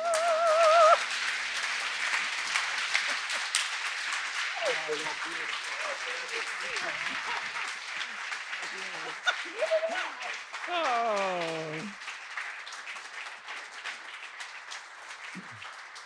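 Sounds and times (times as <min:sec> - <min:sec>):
crowd voices: 0:00.0 - 0:01.0, 0:02.6 - 0:12.0
soprano singing with vibrato: 0:00.0 - 0:01.0
audience applause: 0:00.0 - 0:16.0.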